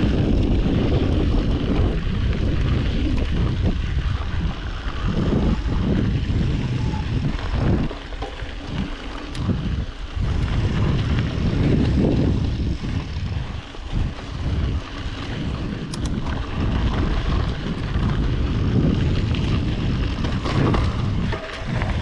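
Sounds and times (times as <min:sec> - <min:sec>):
bike clicks and rattles: 0:00.0 - 0:22.0
bike tyres rolling over dirt: 0:00.0 - 0:22.0
wind buffeting microphone: 0:00.0 - 0:22.0.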